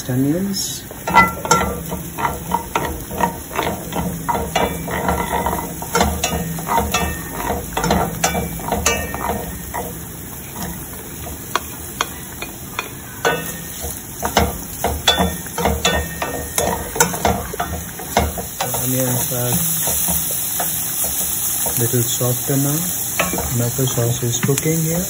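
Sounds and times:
garlic sizzling in hot oil: 0:00.2 - 0:25.0
wooden spoon scraping pan: 0:01.0 - 0:12.2, 0:13.4 - 0:24.7.

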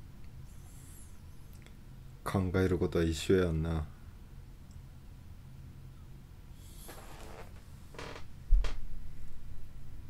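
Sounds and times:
chair creaking: 0:06.8 - 0:08.8
heavy low thump: 0:08.5 - 0:09.0.

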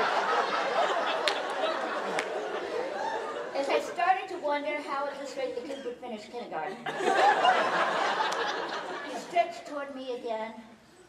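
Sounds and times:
audience laughter: 0:00.0 - 0:04.0, 0:06.8 - 0:09.3.

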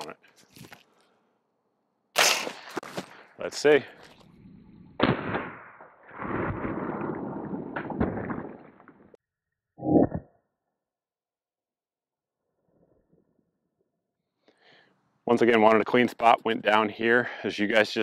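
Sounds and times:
suppressed gunshot: 0:05.0 - 0:05.9.

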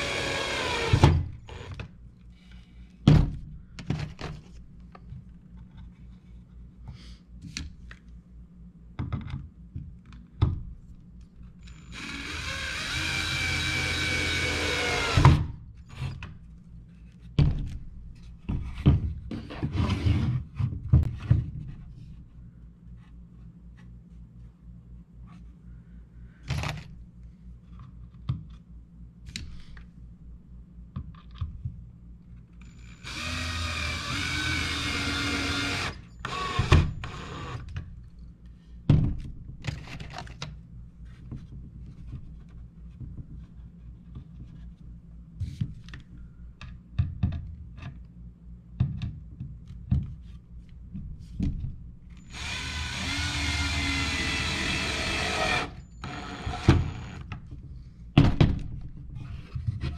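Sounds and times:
cordless drill whining: 0:00.0 - 0:01.8, 0:11.6 - 0:15.4, 0:32.6 - 0:37.6, 0:52.2 - 0:57.2.

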